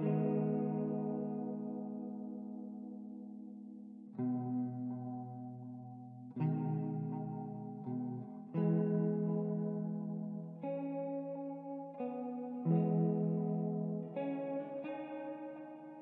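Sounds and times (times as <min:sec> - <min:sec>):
ambient guitar chords: 0:00.0 - 0:16.0.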